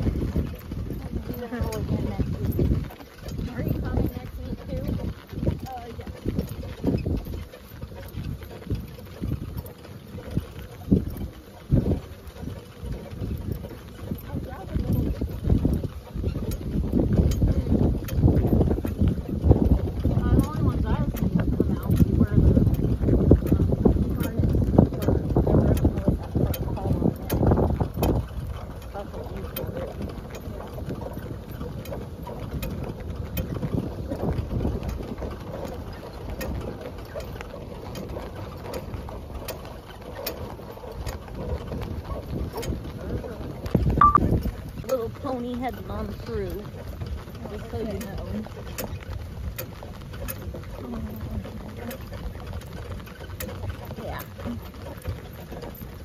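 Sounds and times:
horse-drawn cart moving across grass: 0.0s - 56.0s
light ticks and rattles: 0.0s - 56.0s
wind buffeting microphone: 0.0s - 56.0s.

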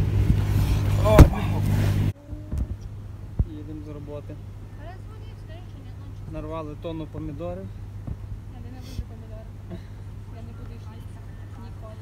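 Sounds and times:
car engine running: 0.0s - 12.0s
voices: 1.0s - 12.0s.

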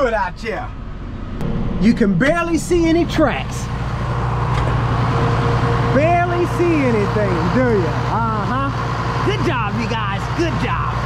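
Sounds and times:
tractor engine drone: 0.0s - 11.0s.

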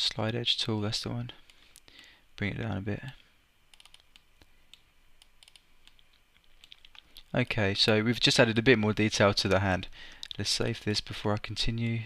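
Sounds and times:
mouse and keyboard clicks: 5.4s - 7.0s.

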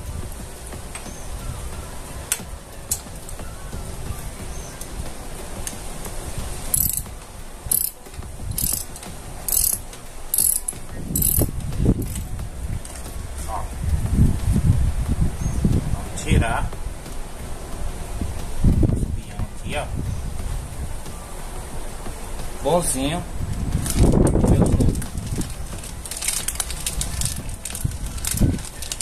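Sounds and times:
ratchet wrench clicking: 6.7s - 7.1s, 7.7s - 12.3s.

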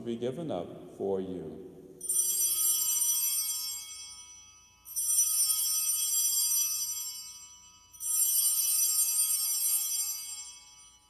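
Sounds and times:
altar bells ringing: 2.0s - 11.0s.

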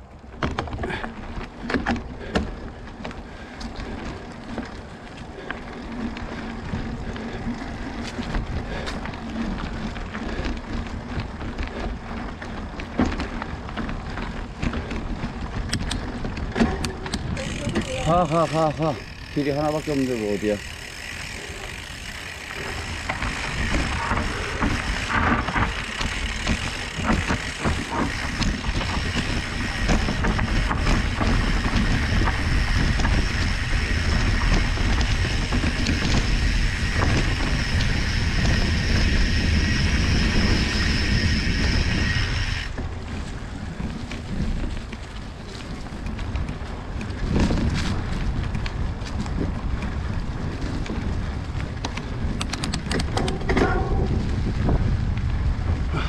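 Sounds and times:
bike tyres crunching leaves: 0.0s - 56.0s
wind rumbling on microphone: 0.0s - 56.0s
bike knocks and rattles: 0.2s - 56.0s.

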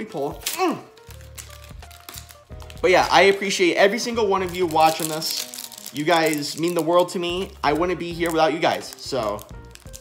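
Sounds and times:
foil pack crinkling: 0.0s - 10.0s
quiet music with steady bass: 0.0s - 10.0s
person speaking: 2.7s - 9.5s.

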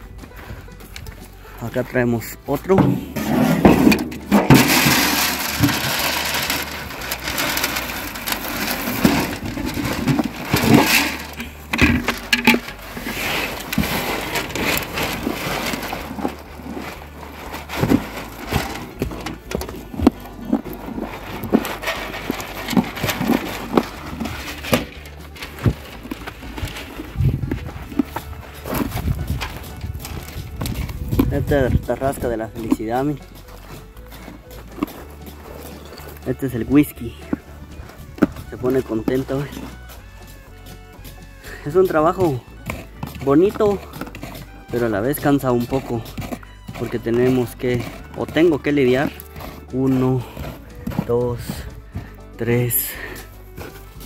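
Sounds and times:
background music: 0.0s - 54.0s
horse crunching feed: 0.0s - 54.0s
grain rustling: 2.1s - 54.0s.

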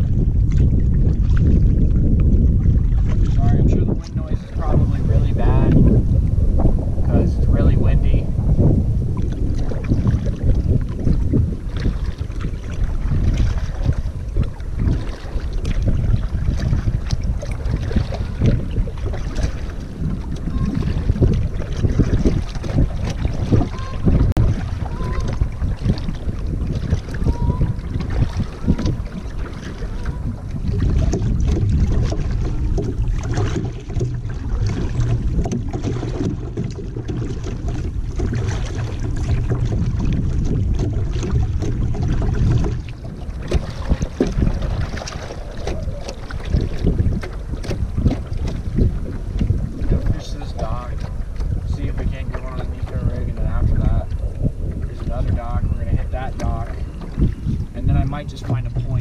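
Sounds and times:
kayak paddle splashing water: 0.0s - 59.0s
wind buffeting microphone: 0.0s - 59.0s.

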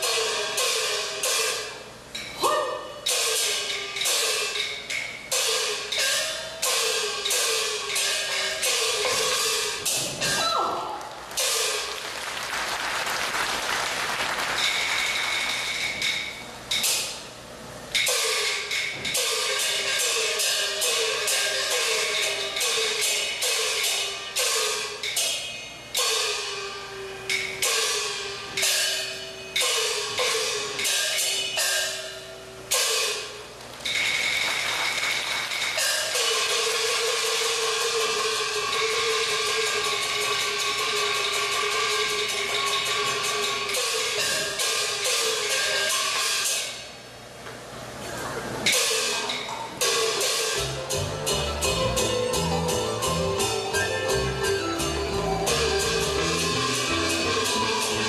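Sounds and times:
clashing cymbals: 0.0s - 10.6s, 11.3s - 12.1s, 14.6s - 47.3s, 48.7s - 58.0s.

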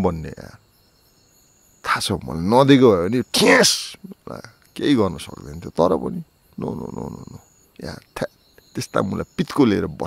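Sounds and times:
faint high steady tone: 0.0s - 10.0s
man's drawn-out utterance: 3.2s - 4.1s.

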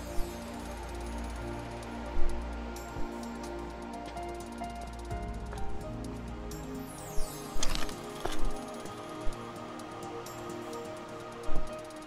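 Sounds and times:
music with held tones: 0.0s - 12.0s.

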